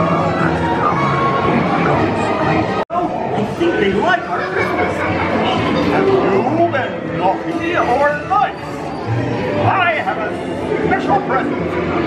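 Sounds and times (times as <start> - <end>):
indistinct voices chattering: 0.0 - 12.0.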